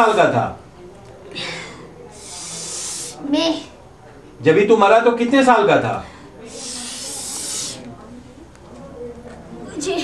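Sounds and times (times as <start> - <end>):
hiss through the teeth: 2.1 - 3.2, 6.5 - 7.9.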